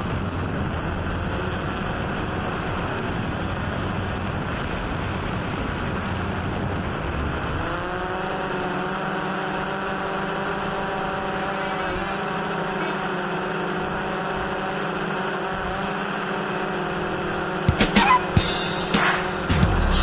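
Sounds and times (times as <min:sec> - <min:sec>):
wind noise: 0:00.0 - 0:08.5
drone propellers humming: 0:00.0 - 0:20.0.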